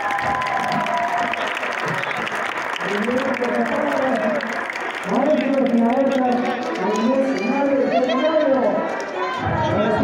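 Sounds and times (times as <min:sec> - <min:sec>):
audience applauding: 0:00.0 - 0:09.4
man's voice: 0:02.8 - 0:08.9, 0:09.5 - 0:10.0.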